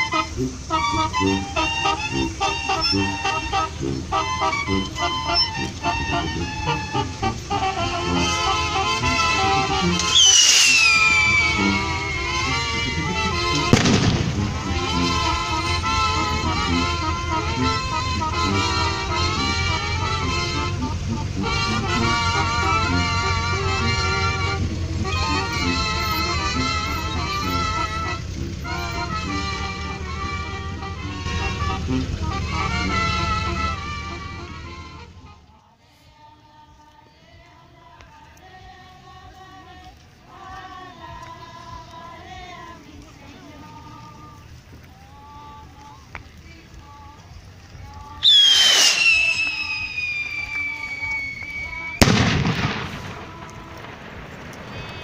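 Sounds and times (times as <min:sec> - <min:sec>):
whistling skyrocket: 0:00.0 - 0:07.0, 0:09.2 - 0:13.8, 0:48.2 - 0:52.1
band music with held notes: 0:00.0 - 0:35.6, 0:45.6 - 0:55.0
firework bang: 0:10.0 - 0:11.6, 0:13.7 - 0:14.9, 0:48.2 - 0:55.0.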